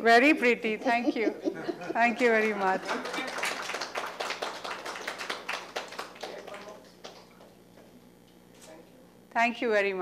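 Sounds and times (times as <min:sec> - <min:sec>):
audience clapping: 0:02.2 - 0:07.6.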